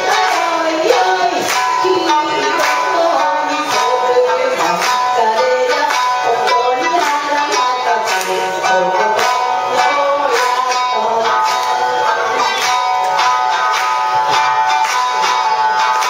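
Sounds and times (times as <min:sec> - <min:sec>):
shamisen plucked melody: 0:00.0 - 0:16.0.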